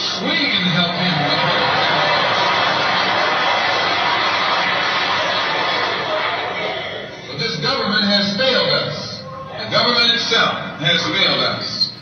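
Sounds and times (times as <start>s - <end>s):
audience applauding and cheering: 0.0s - 7.1s.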